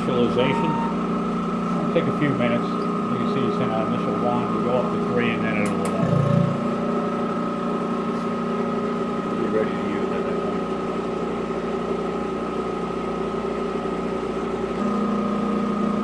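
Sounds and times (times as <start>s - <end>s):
steady machine tones: 0.0s - 7.5s
pump machine hum: 0.0s - 16.0s.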